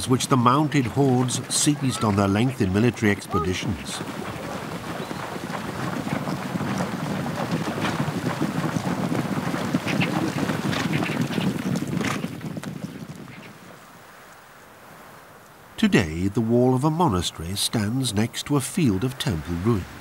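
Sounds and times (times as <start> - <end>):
horses galloping through water: 0.0 - 15.1, 15.8 - 20.0.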